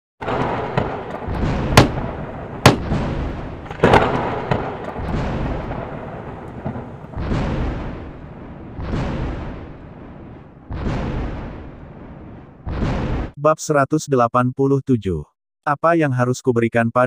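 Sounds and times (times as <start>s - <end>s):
rumbling thunder: 0.2s - 13.4s
thunder cracks: 0.2s - 13.4s.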